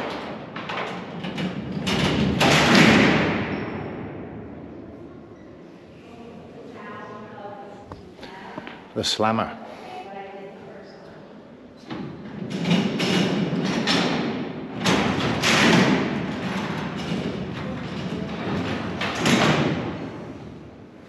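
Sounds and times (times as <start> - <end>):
steel doors rolling and banging shut: 0.0 - 4.5, 11.9 - 20.8.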